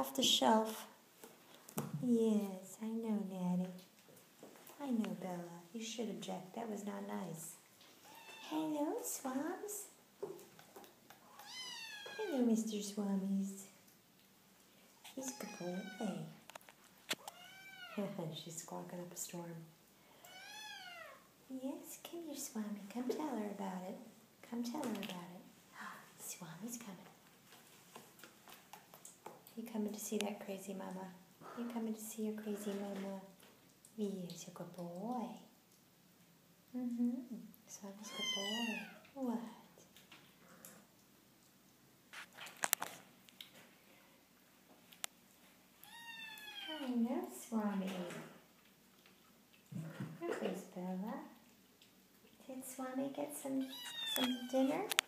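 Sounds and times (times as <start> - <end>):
cat meowing: 8.1 - 8.5, 11.3 - 12.3, 17.2 - 18.0, 20.3 - 21.2, 38.1 - 39.0, 45.8 - 46.9, 53.6 - 54.5.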